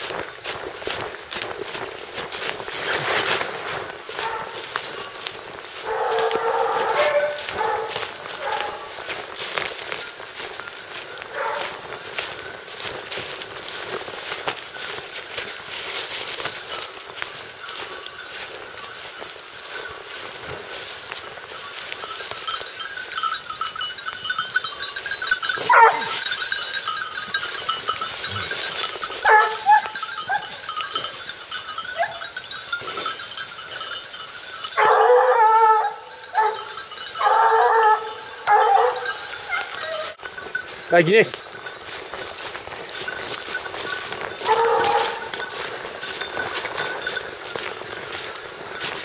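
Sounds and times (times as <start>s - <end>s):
bells ringing lightly: 0.0s - 49.0s
hounds baying: 2.8s - 12.9s, 19.6s - 40.8s, 42.2s - 48.2s.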